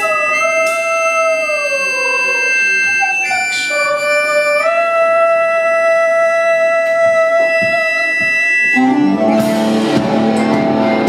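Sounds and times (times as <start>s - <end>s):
accordion chord: 8.5s - 11.0s.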